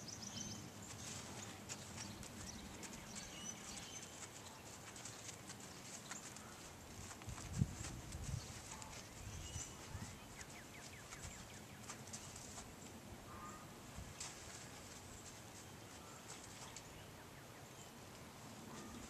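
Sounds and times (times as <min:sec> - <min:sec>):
hoofbeats on sand: 0:00.6 - 0:12.8.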